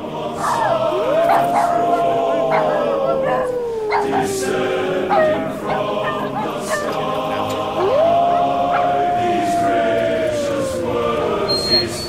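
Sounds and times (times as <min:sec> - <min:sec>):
dog howling: 0:00.0 - 0:12.0
dogs barking sharply: 0:00.4 - 0:02.9, 0:05.1 - 0:09.0
music: 0:05.0 - 0:12.0.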